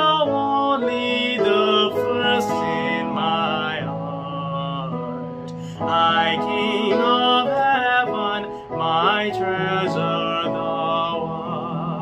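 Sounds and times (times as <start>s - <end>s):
man singing a slow hymn: 0.0s - 12.0s.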